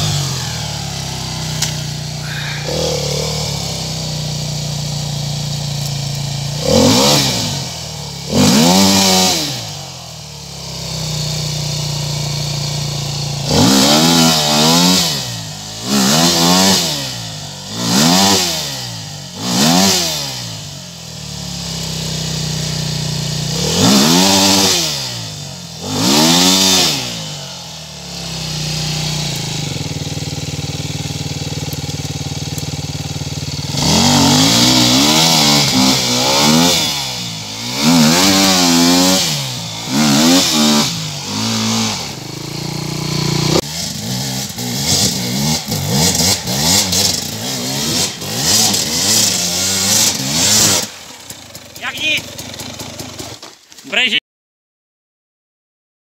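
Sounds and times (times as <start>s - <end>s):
dirt bike engine revving: 0.0s - 53.5s.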